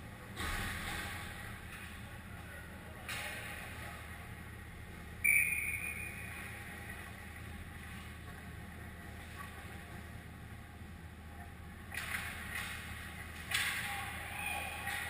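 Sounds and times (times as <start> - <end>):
low hum of arena: 0.0 - 15.0.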